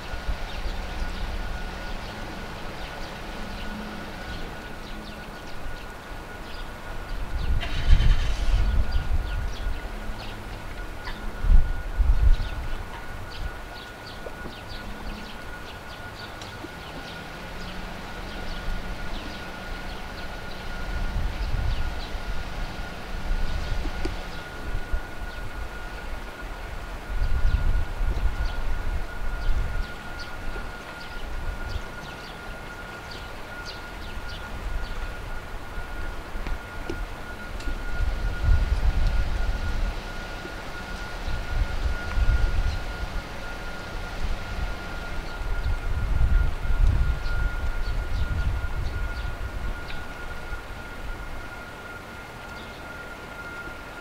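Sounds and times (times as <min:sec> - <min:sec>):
jet engine high whine: 0:00.0 - 0:54.0.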